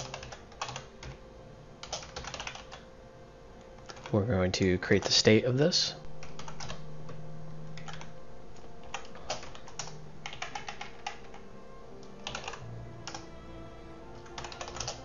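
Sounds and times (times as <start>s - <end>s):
typing on computer keyboard: 0.0s - 1.2s, 1.8s - 2.8s, 3.8s - 4.2s, 6.2s - 6.8s, 7.8s - 8.1s, 8.8s - 11.4s, 12.1s - 13.2s, 14.3s - 15.0s
faint background music: 0.0s - 15.0s.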